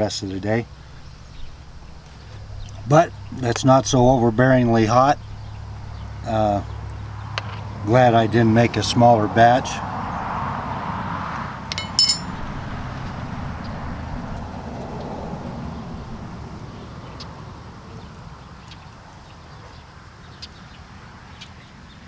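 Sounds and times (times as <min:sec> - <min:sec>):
utensil clinking on glass: 0:11.7 - 0:12.4.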